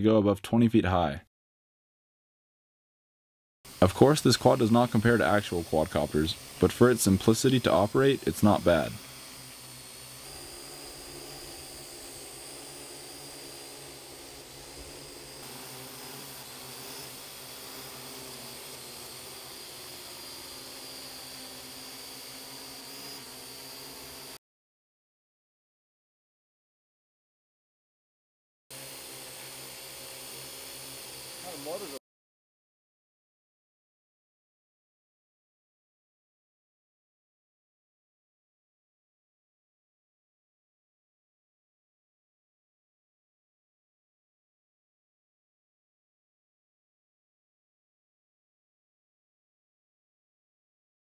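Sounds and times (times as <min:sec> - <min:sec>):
person speaking: 0:00.0 - 0:01.3, 0:03.8 - 0:09.1
quadcopter drone buzzing: 0:03.7 - 0:24.4, 0:28.7 - 0:32.0.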